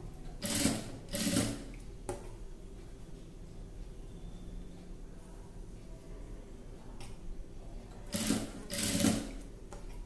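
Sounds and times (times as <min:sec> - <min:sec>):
electric sewing machine stitching: 0:00.4 - 0:01.7, 0:08.1 - 0:09.4.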